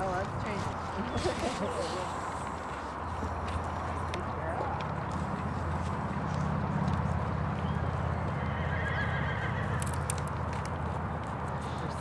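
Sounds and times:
horse whinnying: 8.4 - 9.8.

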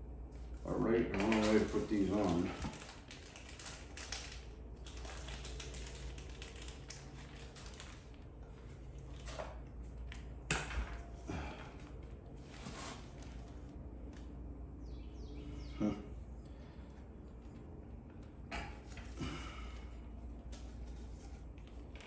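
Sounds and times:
low steady hum: 0.0 - 22.0.

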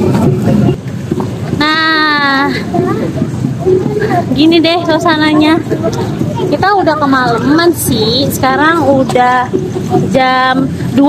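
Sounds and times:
street crowd hubbub: 0.0 - 11.0.

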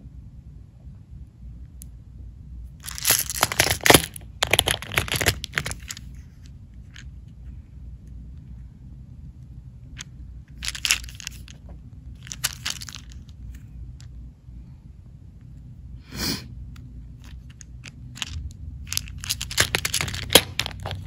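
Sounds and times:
charms rattling against plastic: 2.8 - 6.2, 10.6 - 11.6, 12.2 - 13.4, 17.2 - 21.0.

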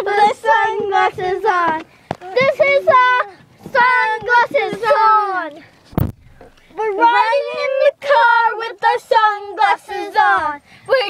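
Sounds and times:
girls singing: 0.0 - 5.7, 6.7 - 11.0
sharp thump: 5.9 - 6.6.

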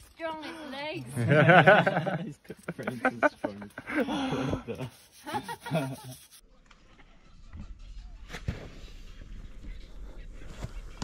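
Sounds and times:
person laughing or talking: 1.2 - 6.3.

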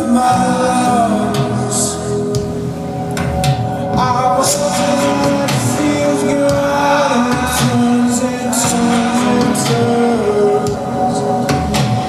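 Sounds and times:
electronic keyboard chords: 0.0 - 12.0.

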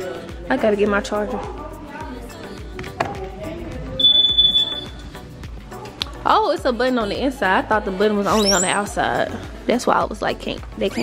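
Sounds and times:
high-pitched electronic beep: 4.0 - 5.0, 8.3 - 8.9.

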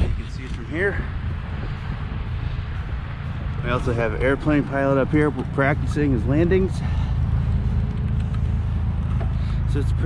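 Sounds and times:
wind rushing over microphone: 0.0 - 9.1.

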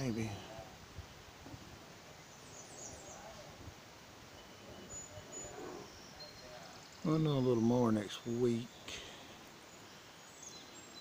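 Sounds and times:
faint outdoor background noise: 0.0 - 11.0.

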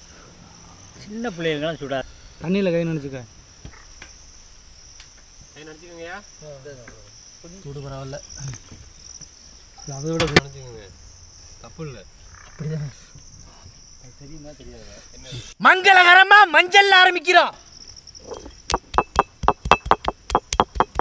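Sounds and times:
crickets chirring: 0.0 - 21.0
sharp knock: 18.7 - 21.0.

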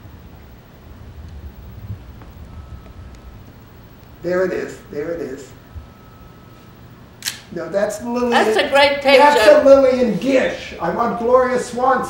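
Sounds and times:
low room rumble: 0.0 - 12.0.

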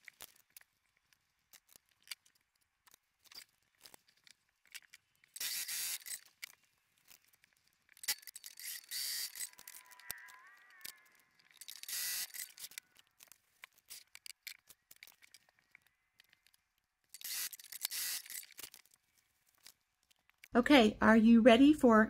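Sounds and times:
small clicks: 0.0 - 20.6.

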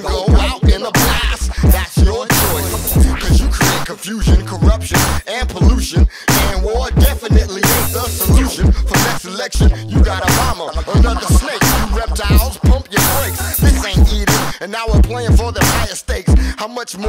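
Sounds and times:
rapping over a beat: 0.0 - 17.0
heavy bass drum hits: 9.6 - 14.4.

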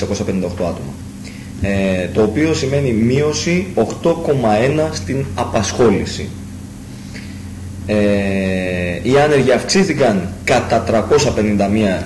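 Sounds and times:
man saying eh: 1.6 - 6.3.

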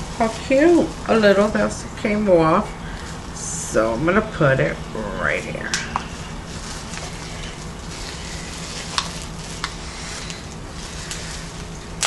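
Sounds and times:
gift wrapping rustling: 5.4 - 12.0.

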